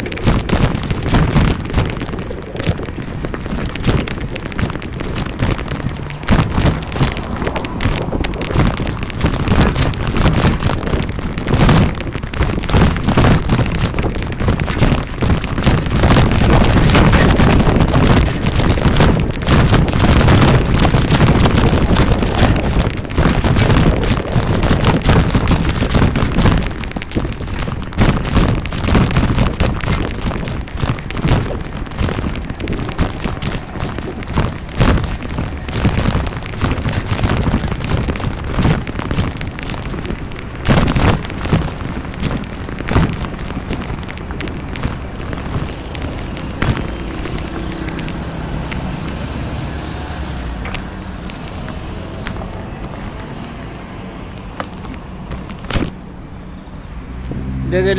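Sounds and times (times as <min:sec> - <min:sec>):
wind buffeting microphone: 0:00.0 - 0:56.1.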